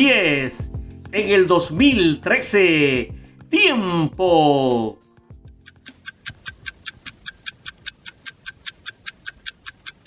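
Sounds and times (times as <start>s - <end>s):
fast clock-like ticking: 5.5s - 10.0s.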